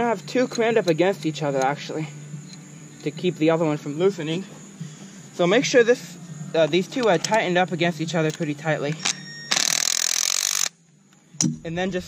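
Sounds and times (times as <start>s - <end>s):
impact driver burst: 9.0s - 10.7s.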